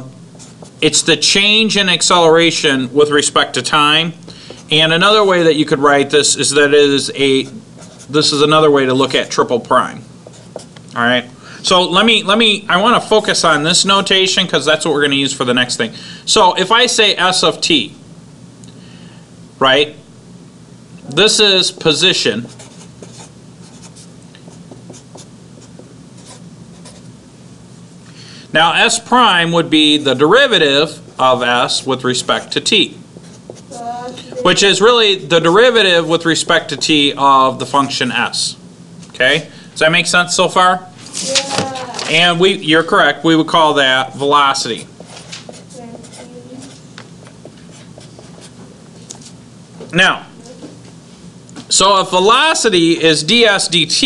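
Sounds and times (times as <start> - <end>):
faint low hum: 0.0 - 54.0
marker scratching on whiteboard: 0.4 - 0.8, 7.4 - 8.3, 10.2 - 10.7, 21.7 - 27.1, 31.6 - 34.6, 45.0 - 48.6.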